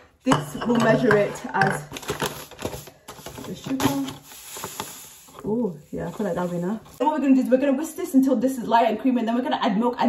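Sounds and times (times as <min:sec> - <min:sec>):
paper bag rustling: 0:01.9 - 0:07.0
sugar pouring grainy hiss: 0:02.6 - 0:07.4.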